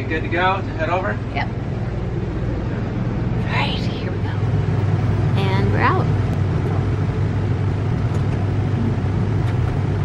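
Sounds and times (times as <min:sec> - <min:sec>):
low engine hum: 0:00.0 - 0:10.0
road noise: 0:00.0 - 0:10.0.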